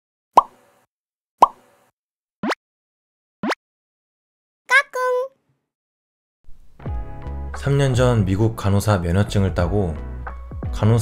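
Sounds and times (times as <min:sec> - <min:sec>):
cartoon pop sound effects: 0:00.4 - 0:00.6, 0:01.4 - 0:01.6.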